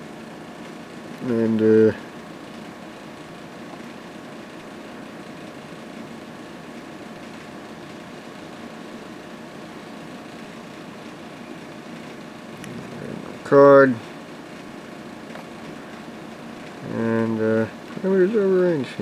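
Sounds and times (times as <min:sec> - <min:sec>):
faint even hum: 0:00.0 - 0:19.0
steady background hiss: 0:00.0 - 0:19.0.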